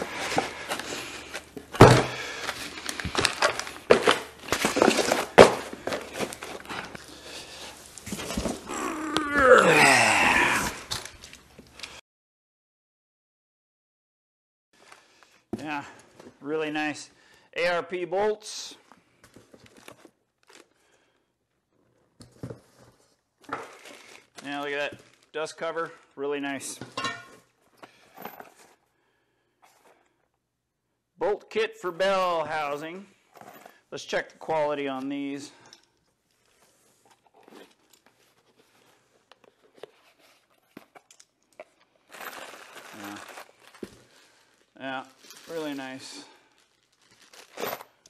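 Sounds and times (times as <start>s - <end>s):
packing material rustling: 0.0s - 9.0s, 19.3s - 20.8s, 23.6s - 25.4s, 36.3s - 48.0s
plastic bag crinkling: 2.2s - 7.1s, 40.2s - 48.0s.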